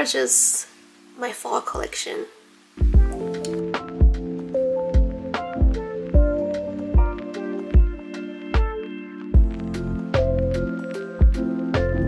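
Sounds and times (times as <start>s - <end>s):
background music with steady beat: 2.4s - 12.0s.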